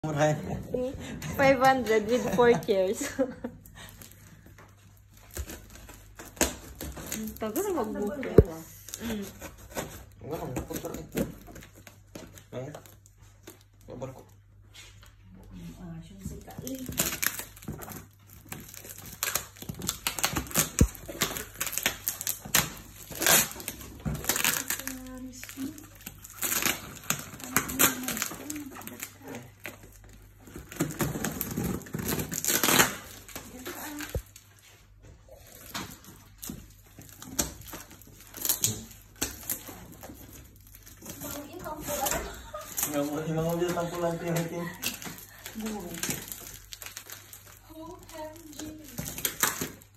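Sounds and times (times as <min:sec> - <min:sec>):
tape ripping off cardboard: 0:05.2 - 0:12.4, 0:16.5 - 0:34.4, 0:35.3 - 0:49.9.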